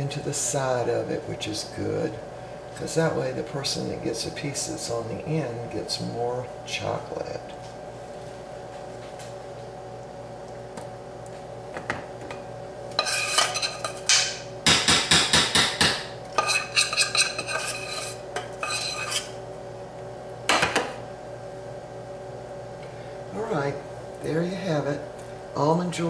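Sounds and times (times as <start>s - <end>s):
metal spoon scraping metal pan: 13.0s - 14.2s, 16.4s - 19.4s.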